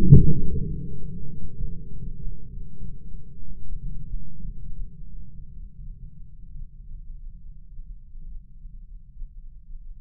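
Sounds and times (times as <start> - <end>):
low rumble: 0.0 - 8.5.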